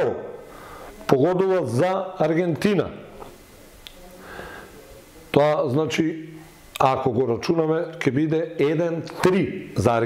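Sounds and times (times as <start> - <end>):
soft breath: 0.4 - 1.0, 4.1 - 5.0.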